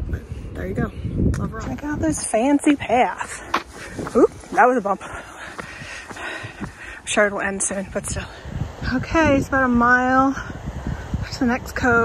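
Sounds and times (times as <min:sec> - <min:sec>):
wind rumbling on microphone: 0:00.0 - 0:12.0
footsteps on paved path: 0:01.3 - 0:08.6.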